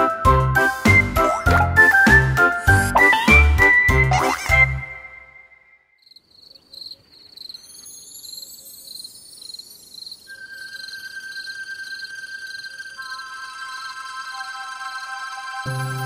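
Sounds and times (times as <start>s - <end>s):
crickets chirping: 5.9s - 15.3s.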